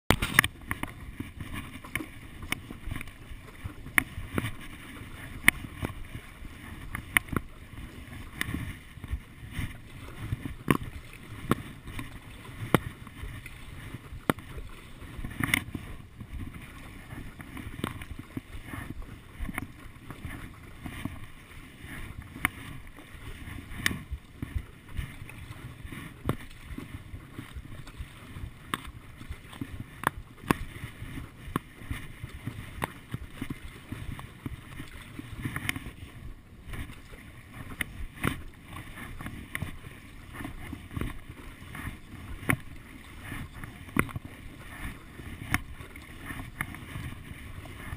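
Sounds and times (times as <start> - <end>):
paddle knocking: 0.1 - 47.9
paddle sloshing in water: 0.1 - 47.9.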